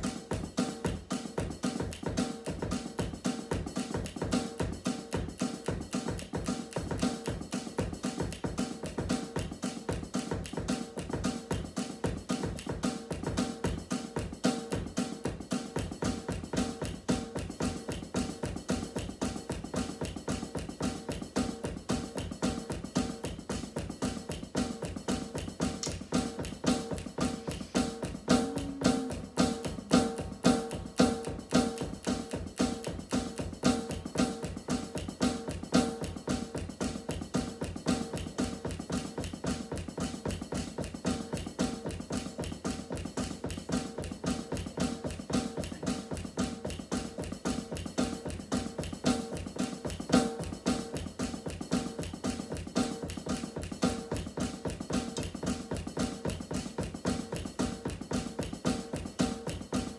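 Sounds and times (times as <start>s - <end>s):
drum kit played with sticks: 0.0s - 59.9s.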